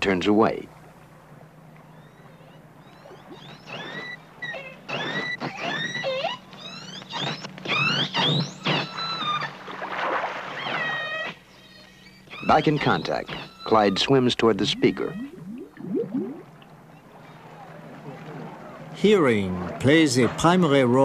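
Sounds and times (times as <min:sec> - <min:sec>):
killer whale whistles and cries: 0:01.9 - 0:19.0.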